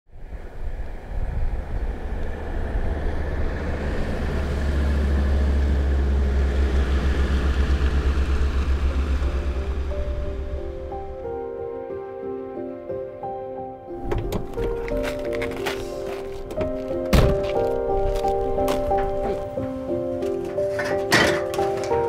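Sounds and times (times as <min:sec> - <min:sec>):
car engine rumble driving past: 0:00.2 - 0:11.6
music: 0:07.8 - 0:22.0.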